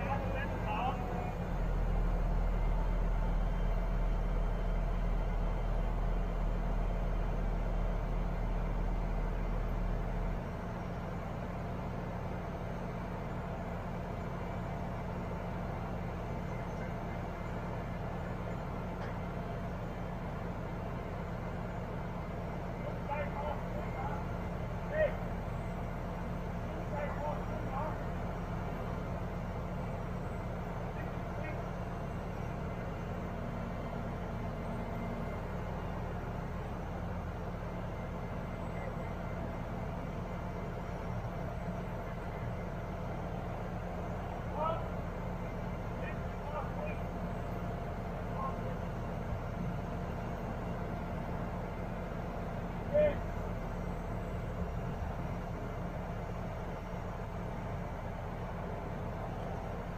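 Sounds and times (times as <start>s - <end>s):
diesel engine idling: 0.0s - 59.9s.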